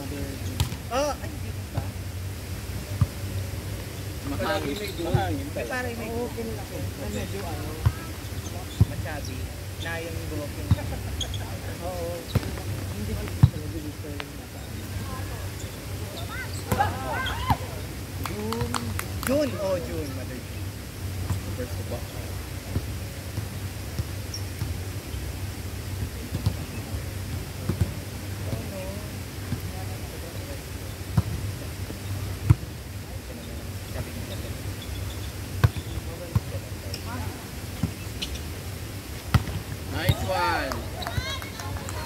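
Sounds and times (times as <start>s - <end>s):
players' voices: 0.0s - 23.8s, 25.8s - 42.0s
hands slapping volleyball: 18.2s - 19.5s, 40.6s - 42.0s.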